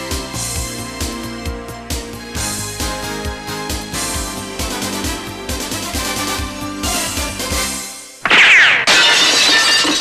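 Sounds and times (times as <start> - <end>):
glass shattering: 8.2 - 10.0.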